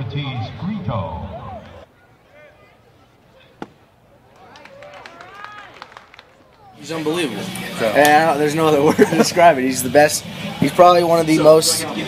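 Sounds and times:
baseball smacking into mitt: 0:03.6 - 0:03.8.

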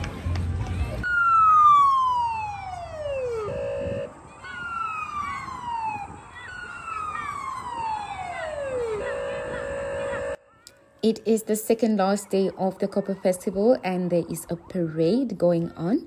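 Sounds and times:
electronic siren sweeps: 0:01.0 - 0:10.4.

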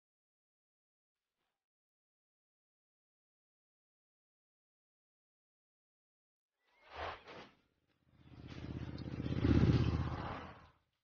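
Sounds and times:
motor scooter passing by: 0:08.1 - 0:10.8.

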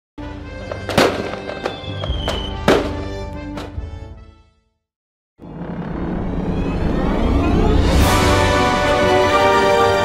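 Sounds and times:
fireworks bursting: 0:00.8 - 0:03.1.

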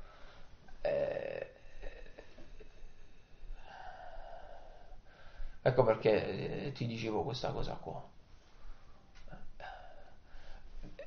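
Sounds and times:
man's throaty vocal sound: 0:00.8 - 0:05.0.

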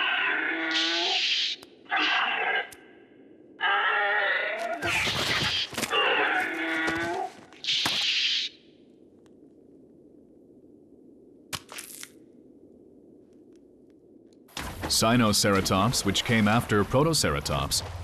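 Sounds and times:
creature cry with wavering pitch: 0:00.0 - 0:02.8, 0:03.6 - 0:08.5.

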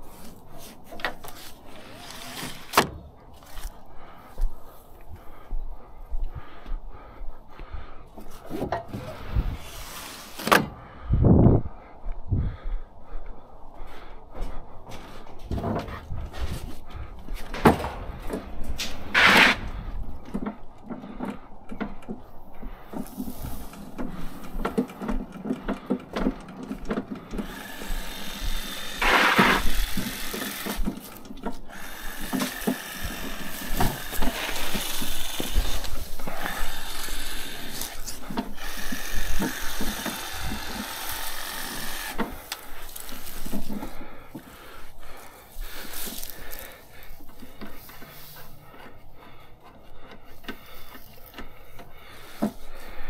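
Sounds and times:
wheels and frame rattling: 0:14.9 - 0:53.0.

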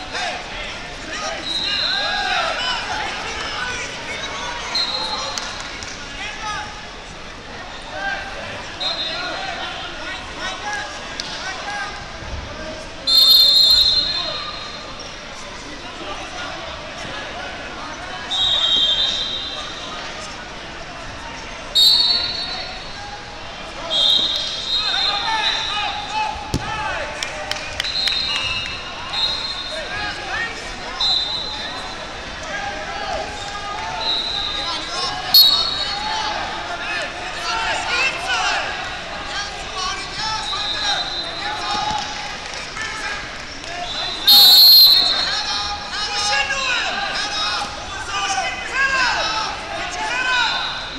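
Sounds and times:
spectators chattering and shouting: 0:00.0 - 0:50.9
referee whistle blasts: 0:13.1 - 0:14.8, 0:18.3 - 0:19.8, 0:21.8 - 0:22.8, 0:35.4 - 0:36.1, 0:43.9 - 0:45.4.

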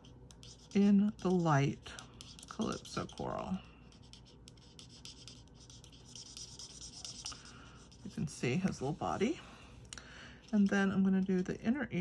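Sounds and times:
marker scratching on cardstock: 0:00.0 - 0:09.2.

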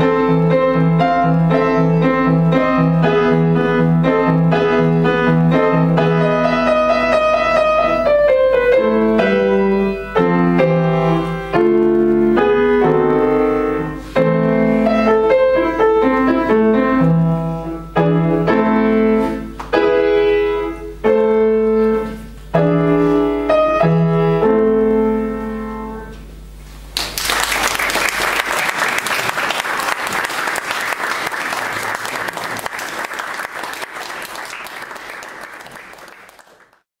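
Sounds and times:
grand piano chords: 0:00.0 - 0:26.6
audience applauding: 0:26.9 - 0:36.9.

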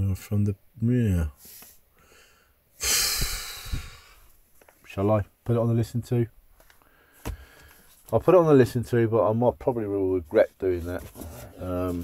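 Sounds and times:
long sigh of breath: 0:02.0 - 0:04.3.

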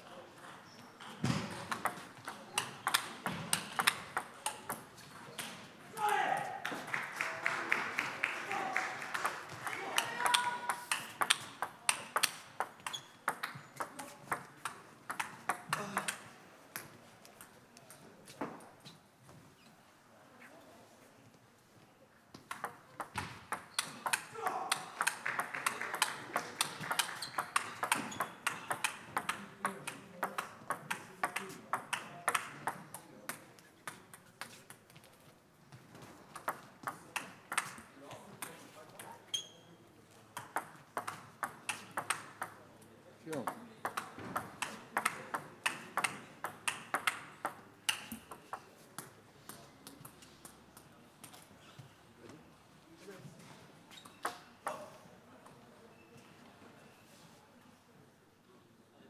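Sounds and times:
table tennis ball clicking: 0:01.6 - 0:04.8, 0:10.0 - 0:16.2, 0:22.4 - 0:34.3, 0:36.3 - 0:37.8, 0:40.4 - 0:42.6, 0:43.4 - 0:49.1.

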